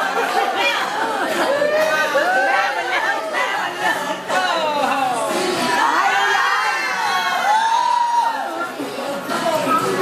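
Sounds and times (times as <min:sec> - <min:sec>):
children shouting and cheering: 0:00.0 - 0:08.9.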